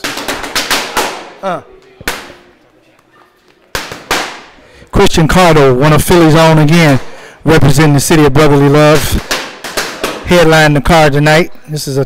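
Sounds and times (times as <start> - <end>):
boxing gloves hitting focus mitts: 0.0 - 2.5, 3.6 - 4.6, 8.9 - 10.7.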